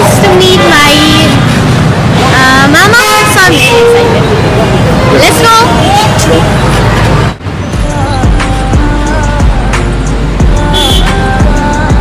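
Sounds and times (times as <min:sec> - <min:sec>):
city street traffic: 0:00.0 - 0:12.0
people's voices: 0:02.1 - 0:09.1
music: 0:07.6 - 0:12.0.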